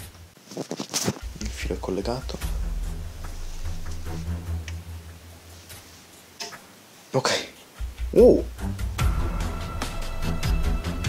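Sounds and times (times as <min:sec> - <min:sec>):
low hum: 0:01.2 - 0:06.1.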